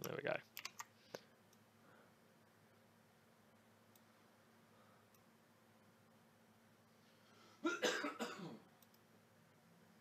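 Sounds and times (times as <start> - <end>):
person coughing: 7.6 - 8.7.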